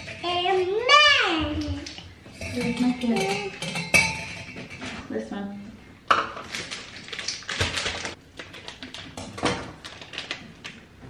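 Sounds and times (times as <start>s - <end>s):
plastic packet rustling: 6.3s - 10.8s.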